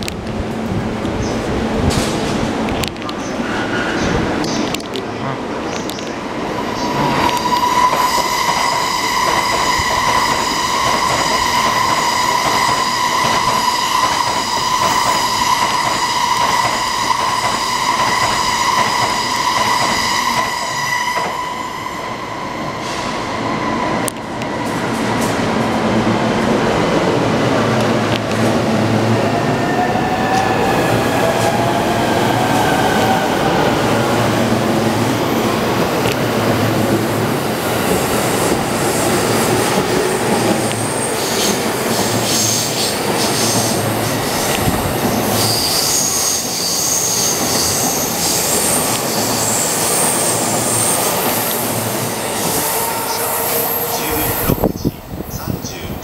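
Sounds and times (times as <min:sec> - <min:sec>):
wheels rumbling on rail: 0:00.0 - 0:56.0.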